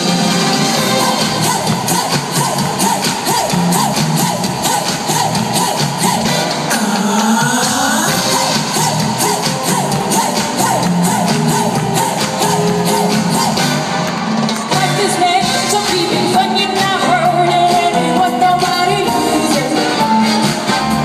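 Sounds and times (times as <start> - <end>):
live pop music in arena: 0.0 - 21.0.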